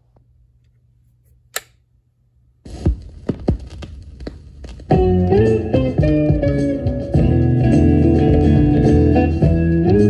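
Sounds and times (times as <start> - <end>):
sharp click: 1.5 - 1.8
vinyl surface noise with crackles: 2.6 - 5.2.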